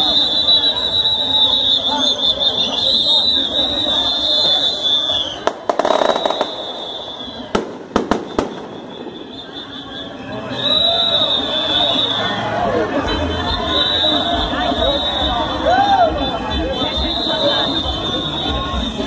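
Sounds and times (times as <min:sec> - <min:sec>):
crowd voices: 0:00.0 - 0:19.0
sharp bangs: 0:05.4 - 0:09.6.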